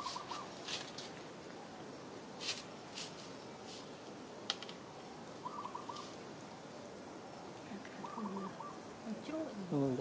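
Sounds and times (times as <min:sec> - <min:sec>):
faint steady hiss: 0:00.0 - 0:10.0
animal chirps: 0:05.4 - 0:06.2, 0:08.0 - 0:08.9.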